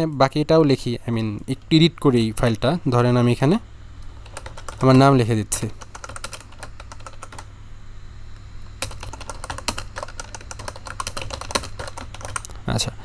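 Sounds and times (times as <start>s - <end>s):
typing on keyboard: 4.2s - 5.0s, 5.6s - 7.5s, 8.8s - 12.5s.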